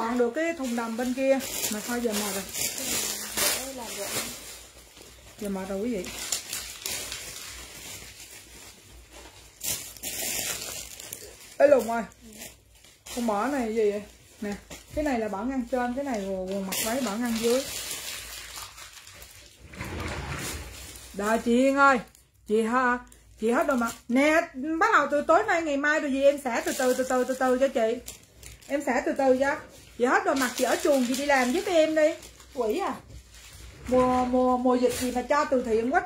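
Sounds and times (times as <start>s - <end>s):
cloth rustling: 0.1s - 21.8s.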